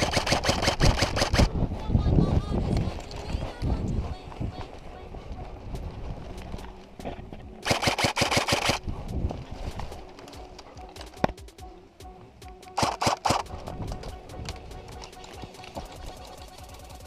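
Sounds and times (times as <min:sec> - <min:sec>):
airsoft rifle full-auto burst: 0:00.0 - 0:01.5, 0:07.6 - 0:08.8, 0:12.8 - 0:13.5.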